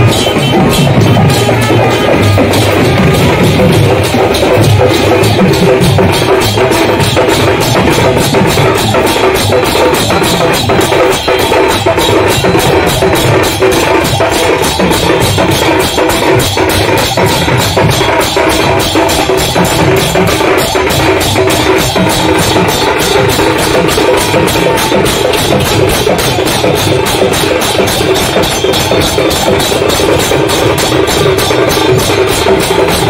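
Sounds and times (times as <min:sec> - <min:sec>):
brass hand cymbals clashing: 0:00.0 - 0:33.0
hand-played barrel drum: 0:00.0 - 0:33.0.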